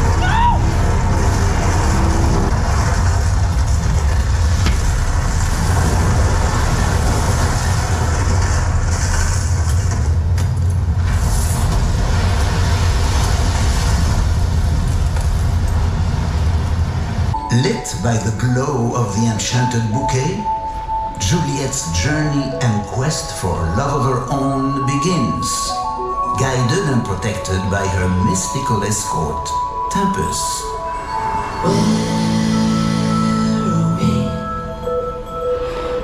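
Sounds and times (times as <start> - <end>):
deep rumble: 0.0 - 24.4.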